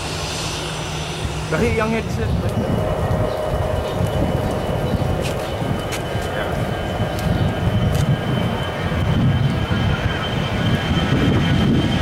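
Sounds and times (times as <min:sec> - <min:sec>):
faint jet engine whine: 0:00.0 - 0:12.0
jet engines rumbling: 0:00.0 - 0:12.0.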